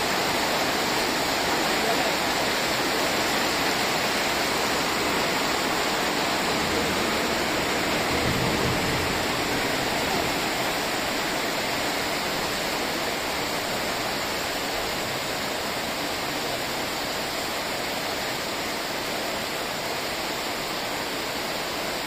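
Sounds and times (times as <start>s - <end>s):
heavy rain pouring: 0.0s - 22.0s.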